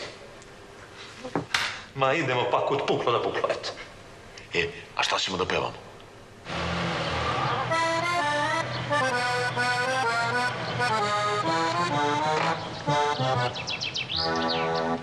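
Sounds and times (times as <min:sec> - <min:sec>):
accordion music: 0:06.5 - 0:15.0.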